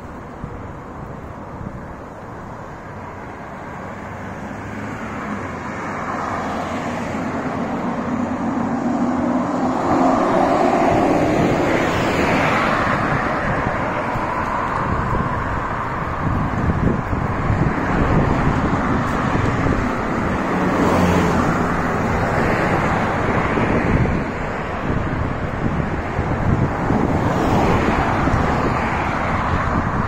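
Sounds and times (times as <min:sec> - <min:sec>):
passing vehicle engine: 0:00.0 - 0:30.0.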